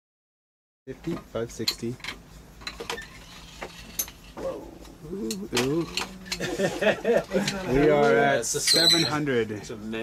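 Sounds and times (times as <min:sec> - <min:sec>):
steady low hum: 0:00.9 - 0:08.6.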